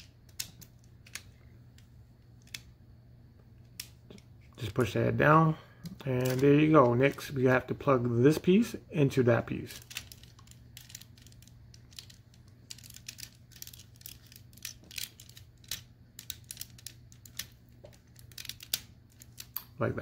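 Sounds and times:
low steady hum: 0.0 - 20.0
plastic parts clicking: 0.3 - 1.4, 2.4 - 2.7, 5.8 - 7.2, 9.8 - 19.7.

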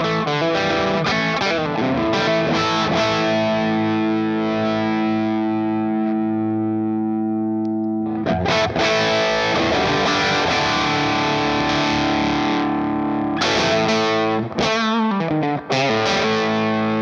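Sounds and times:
overdriven electric guitar: 0.0 - 17.0.

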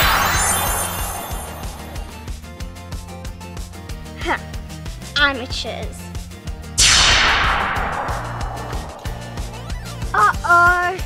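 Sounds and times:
magic spell sound effect: 0.0 - 2.2.

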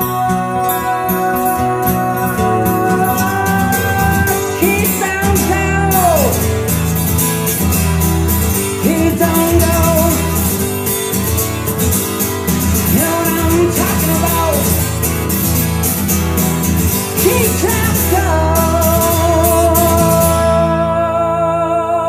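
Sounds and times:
song with singer and band: 0.0 - 22.0.

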